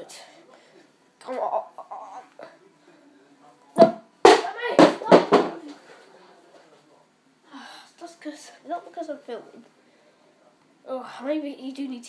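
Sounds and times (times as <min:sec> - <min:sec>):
sharp knock: 0:03.8 - 0:05.6.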